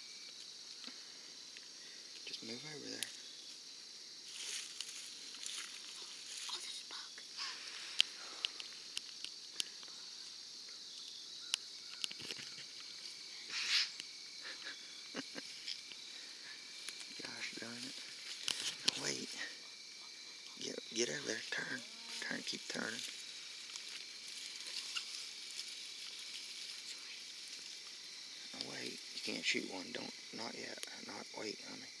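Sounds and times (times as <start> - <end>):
insects chirping in a field: 0.0 - 32.0
rustling in grass: 4.2 - 9.2, 12.0 - 19.6, 21.0 - 29.4.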